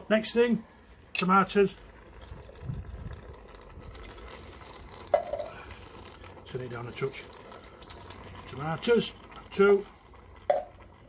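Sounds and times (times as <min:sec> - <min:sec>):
tomatoes pouring into a pot: 0:00.0 - 0:11.0.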